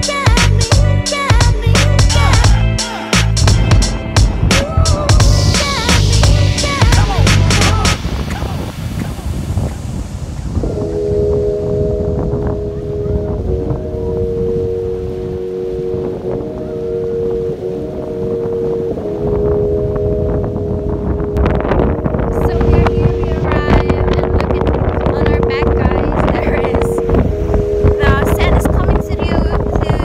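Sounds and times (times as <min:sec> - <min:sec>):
strong wind buffeting microphone: 0:03.4 - 0:30.0
surf on the shore: 0:04.3 - 0:30.0
chord of low sustained tones: 0:10.6 - 0:30.0.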